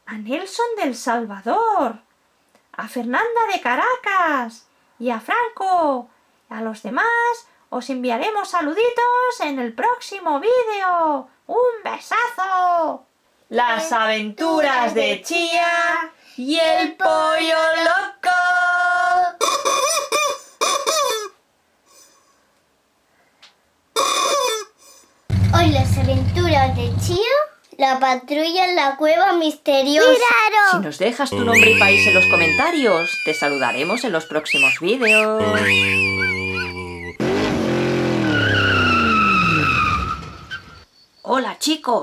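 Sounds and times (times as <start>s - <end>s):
cartoon chicken clucking and squawking: 19.4s - 21.3s, 24.0s - 24.8s, 31.4s - 37.2s
tyres squealing: 31.4s - 40.9s
race car engine: 37.2s - 40.7s.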